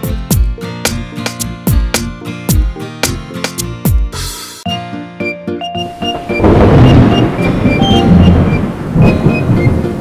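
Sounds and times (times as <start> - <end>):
light background music: 0.0 - 10.0
thunder rolling rumble: 6.2 - 10.0.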